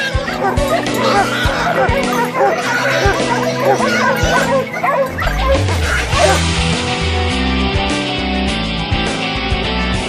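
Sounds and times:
hounds yelping and barking: 0:00.0 - 0:06.4
rock music with heavy bass: 0:03.0 - 0:10.0.

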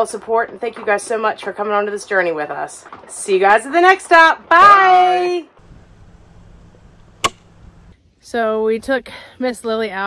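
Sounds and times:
faint low hum: 0:05.6 - 0:08.0
clapperboard snapping shut: 0:07.0 - 0:07.6.

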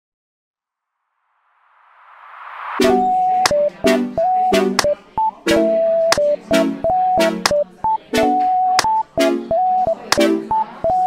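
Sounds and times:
synth chord stabs: 0:02.8 - 0:04.8
high beeping synth melody: 0:02.8 - 0:11.0.

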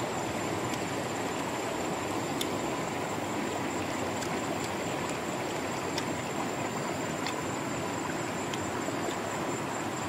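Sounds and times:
river rushing over stones: 0:00.0 - 0:10.0.

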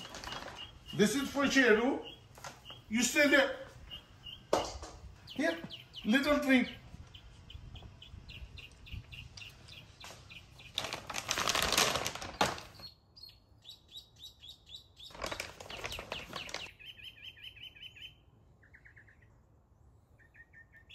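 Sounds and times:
plastic bag crinkling: 0:00.0 - 0:00.8, 0:10.7 - 0:12.8, 0:15.1 - 0:16.7.

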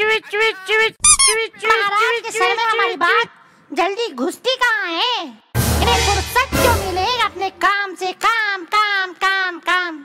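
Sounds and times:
shrill squeak: 0:01.0 - 0:01.4
high-pitched cartoon voice: 0:01.0 - 0:03.2.

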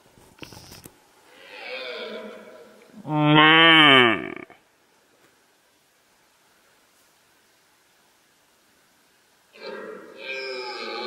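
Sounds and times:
deer stag roaring: 0:01.3 - 0:04.6, 0:09.5 - 0:11.0.

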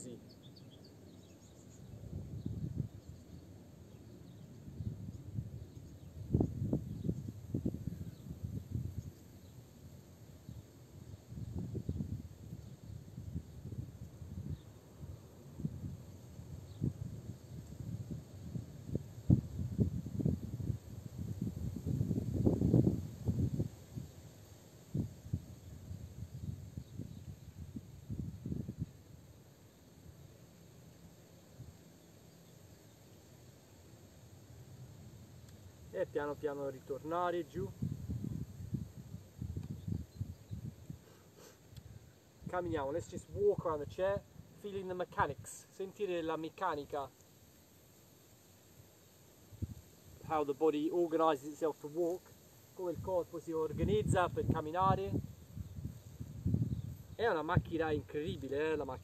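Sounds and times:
wind buffeting microphone: 0:02.1 - 0:03.0, 0:04.8 - 0:09.2, 0:11.3 - 0:24.1, 0:37.6 - 0:41.0, 0:53.0 - 0:58.1.

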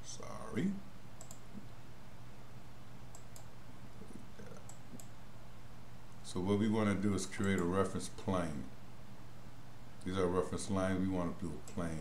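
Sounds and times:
low electrical hum: 0:00.0 - 0:12.0
computer mouse clicks: 0:01.2 - 0:01.7, 0:03.1 - 0:03.5, 0:04.5 - 0:05.2, 0:07.4 - 0:07.7.

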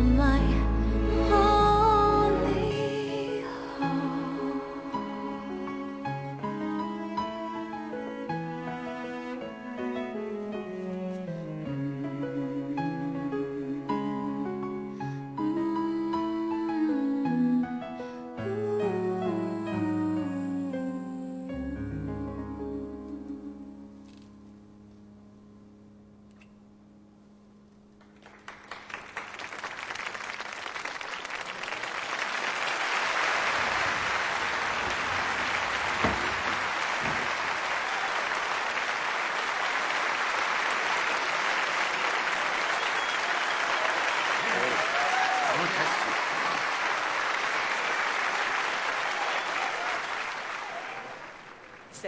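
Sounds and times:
audience applauding: 0:28.0 - 0:52.0.

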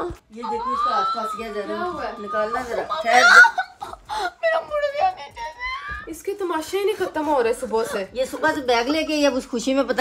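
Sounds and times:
girl whimpering and whining: 0:00.0 - 0:04.6.

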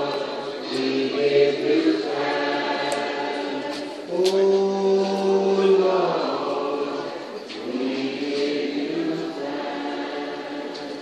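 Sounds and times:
congregation singing: 0:00.0 - 0:11.0.

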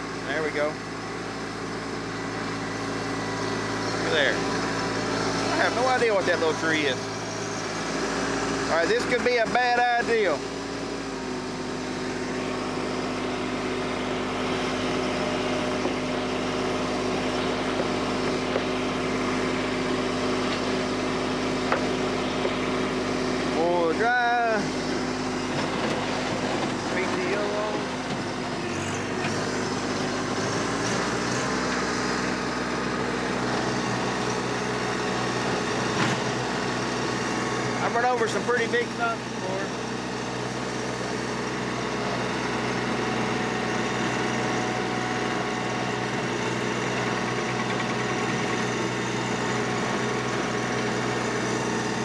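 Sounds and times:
rotary tiller in soil: 0:00.0 - 0:52.0
tractor diesel engine under load: 0:00.0 - 0:52.0.

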